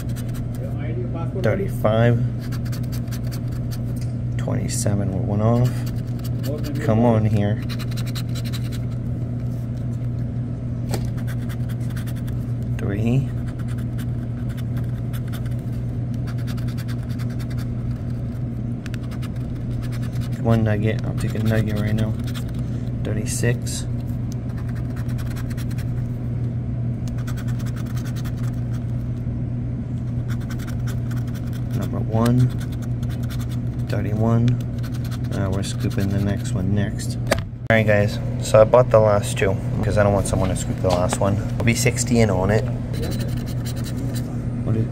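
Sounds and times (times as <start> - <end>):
pen scratching lottery ticket: 0.0 - 0.6, 2.4 - 3.9, 5.4 - 7.0, 7.6 - 9.0, 11.0 - 12.4, 13.2 - 22.6, 24.5 - 26.0, 27.1 - 28.8, 30.2 - 34.1, 34.7 - 36.5, 42.9 - 44.3
steady low hum: 0.0 - 44.9.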